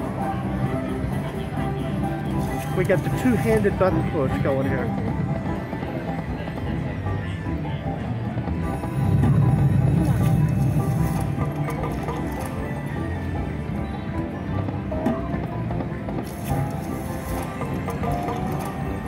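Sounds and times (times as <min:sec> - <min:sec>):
casino crowd chatter: 0:00.0 - 0:19.0
slot machine bonus music: 0:08.7 - 0:13.7, 0:16.2 - 0:19.0
slot machine reel-spin effects: 0:08.8 - 0:12.7.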